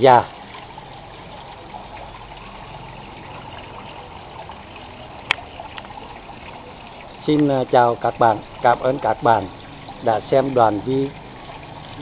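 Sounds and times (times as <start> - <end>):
water trickling into pond: 0.0 - 12.0.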